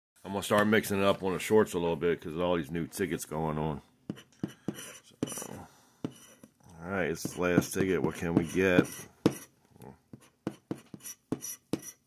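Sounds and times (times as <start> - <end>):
tool tapping card: 4.1 - 5.4, 7.2 - 9.5, 10.1 - 12.0.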